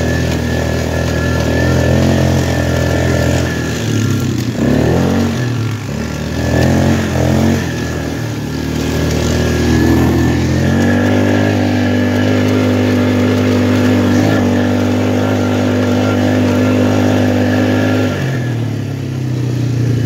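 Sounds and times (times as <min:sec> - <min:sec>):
atv engine revving: 0:00.0 - 0:20.0.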